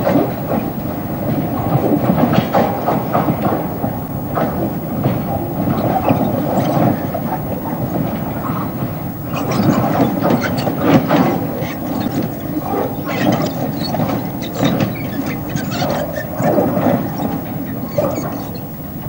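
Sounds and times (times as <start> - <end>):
metallic squeals and clanks: 9.2 - 18.8.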